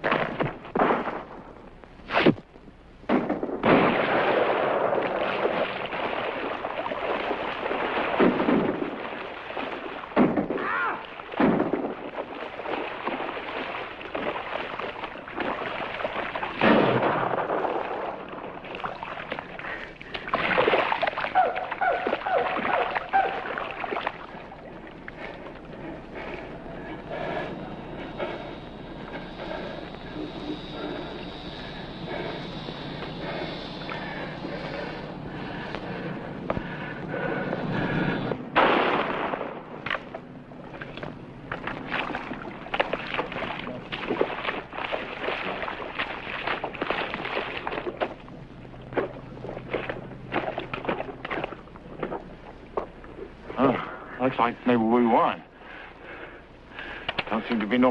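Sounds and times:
rifle shot: 0:03.1 - 0:05.0, 0:38.6 - 0:39.8
splashing in shallow water: 0:03.7 - 0:37.9, 0:38.6 - 0:53.8
person wading through water: 0:03.8 - 0:54.2.

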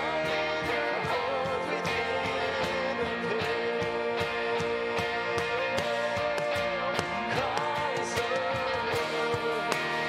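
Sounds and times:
keyboard and band with beat: 0:00.0 - 0:10.0.

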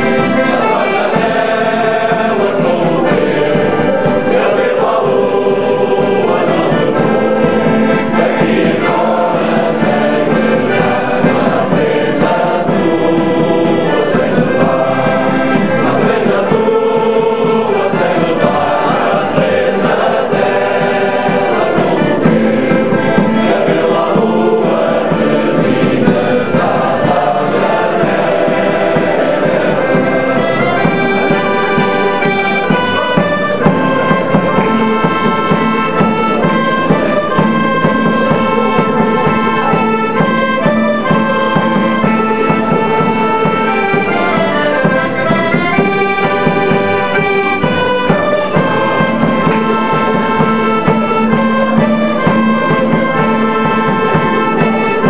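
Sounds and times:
accordion melody: 0:00.0 - 0:55.0
hand drum: 0:00.0 - 0:55.0
mandolin: 0:00.0 - 0:55.0
men's choir singing: 0:00.0 - 0:55.0
strummed guitars: 0:00.0 - 0:55.0.

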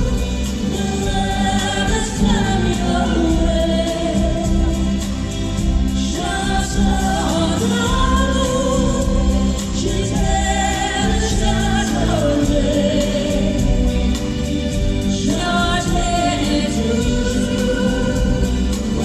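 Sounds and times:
live pop band playing: 0:00.0 - 0:19.0
voices singing together: 0:00.0 - 0:19.0.

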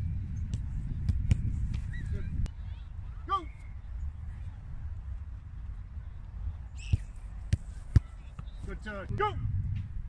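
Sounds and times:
wind rumble on microphone: 0:00.0 - 0:10.0
football kick thumps: 0:06.9 - 0:08.6.

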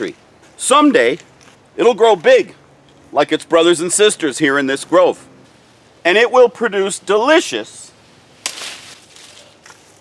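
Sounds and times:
leaves and branches rustling: 0:05.4 - 0:10.0.

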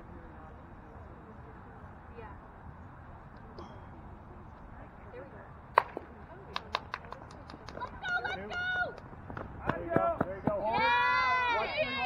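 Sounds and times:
players shouting and cheering: 0:09.8 - 0:12.0.

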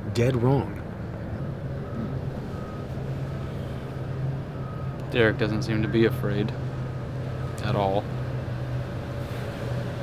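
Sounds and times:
vehicle engine humming: 0:00.0 - 0:10.0
reversing alarm beeps: 0:01.7 - 0:07.9.

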